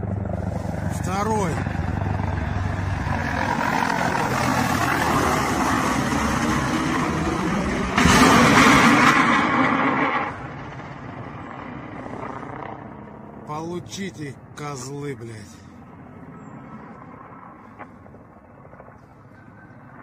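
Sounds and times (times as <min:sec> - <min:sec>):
helicopter engine and rotor noise: 0:00.0 - 0:20.0
loud rushing noise: 0:01.6 - 0:10.6.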